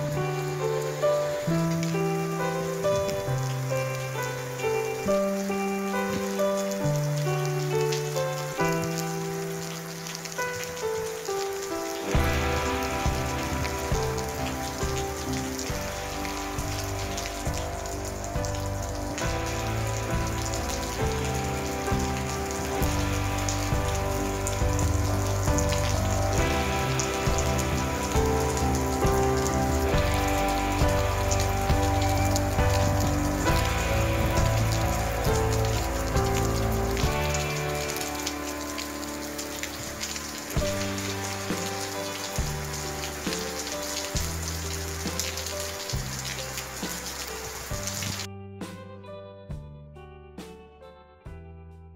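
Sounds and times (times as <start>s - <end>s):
heavy rain falling: 0.0s - 48.3s
music with held chords and bass: 12.0s - 51.9s.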